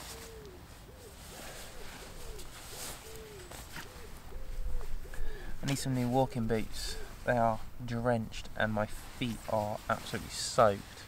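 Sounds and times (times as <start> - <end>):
pigeons cooing: 0.0 - 10.6
padded jacket rustling: 0.0 - 10.9.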